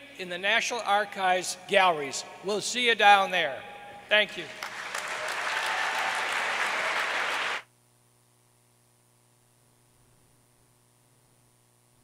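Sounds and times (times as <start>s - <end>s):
audience applauding: 4.4s - 7.6s.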